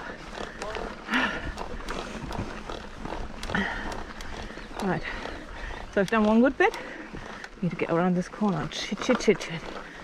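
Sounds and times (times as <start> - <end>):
rider breathing hard: 0.0 - 7.7, 9.6 - 10.0
bike clicks and knocks: 0.0 - 10.0
tyres crunching through sand: 0.0 - 10.0.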